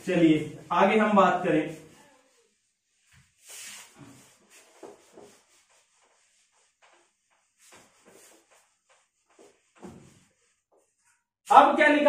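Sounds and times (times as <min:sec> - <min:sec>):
eraser rubbing on whiteboard: 0:01.6 - 0:11.1.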